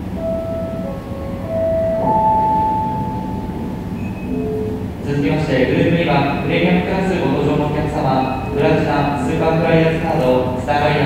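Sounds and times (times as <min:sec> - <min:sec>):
electronic chime tones: 0:00.0 - 0:05.0, 0:08.0 - 0:09.3
low hall noise: 0:00.0 - 0:11.0.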